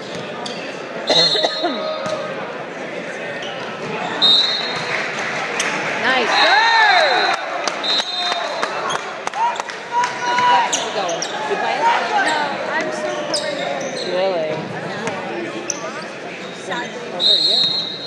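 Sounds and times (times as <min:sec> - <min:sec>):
people calling out in echoing hall: 0:01.0 - 0:02.4, 0:06.1 - 0:14.2
referee's whistle: 0:01.2 - 0:01.8, 0:04.1 - 0:04.9, 0:07.0 - 0:08.6, 0:17.2 - 0:18.0.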